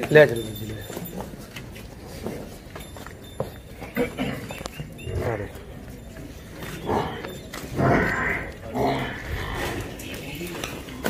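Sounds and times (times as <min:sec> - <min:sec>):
water buffalo calling: 0:04.8 - 0:05.7, 0:06.6 - 0:10.0.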